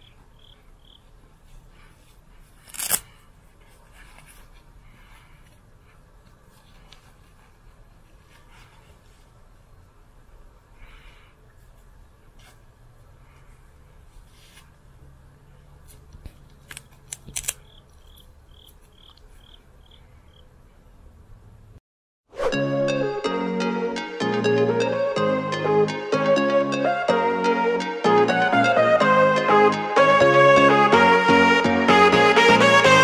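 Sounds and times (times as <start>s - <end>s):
cricket chirping: 0.0s - 1.2s, 17.6s - 20.6s
faint rustling of pad: 1.3s - 9.8s, 11.5s - 17.1s
hook-and-loop strap ripping open: 2.6s - 3.2s.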